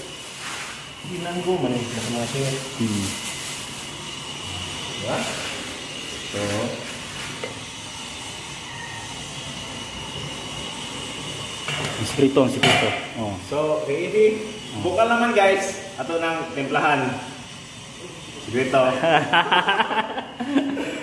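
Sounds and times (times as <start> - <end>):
gas stove hissing: 0.0 - 21.0
people talking: 1.0 - 3.2, 5.0 - 5.5, 6.2 - 6.9, 11.9 - 17.3, 18.0 - 19.4
soup simmering: 5.6 - 11.9.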